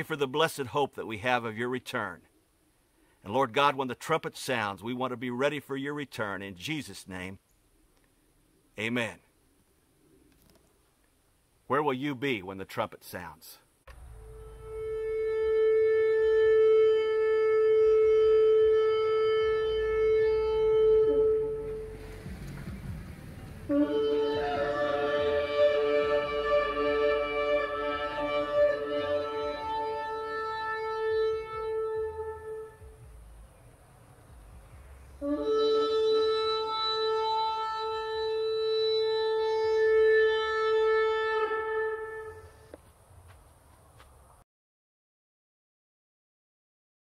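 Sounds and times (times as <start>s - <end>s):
long trumpet blast: 13.9s - 33.2s, 35.1s - 42.8s
soft musical notes: 13.9s - 42.7s.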